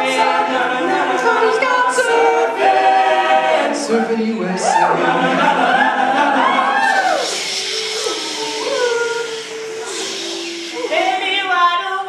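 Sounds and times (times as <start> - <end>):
loud breathy hiss: 7.0 - 11.4.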